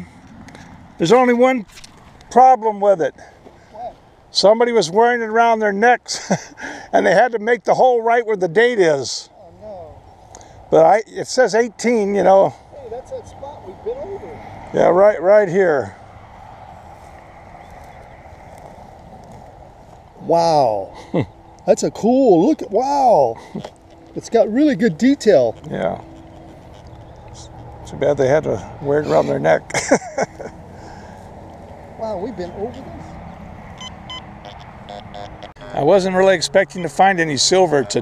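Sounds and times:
low outdoor rumble: 0:06.5 - 0:38.0
faint ticks: 0:23.5 - 0:24.2, 0:25.5 - 0:27.9
metal detector beeping: 0:33.7 - 0:36.2.

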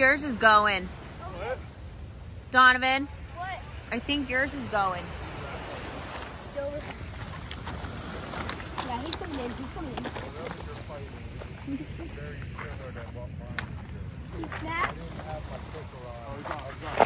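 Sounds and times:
water on rocky shore: 0:00.0 - 0:17.0
wind: 0:00.0 - 0:17.0.

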